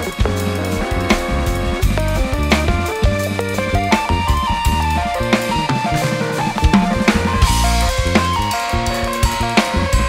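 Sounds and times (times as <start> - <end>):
bass: 0.0 - 10.0
drum kit playing a groove: 0.0 - 10.0
sustained piano and synth tones: 0.0 - 10.0.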